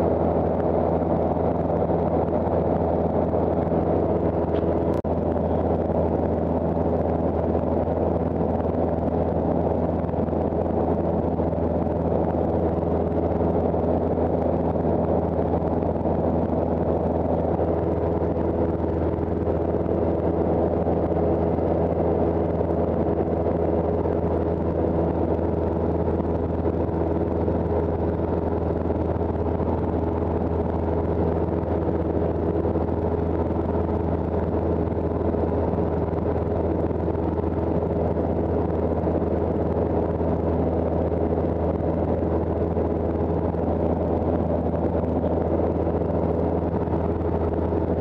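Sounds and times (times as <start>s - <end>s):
airplane engine droning in cabin: 0.0s - 48.0s.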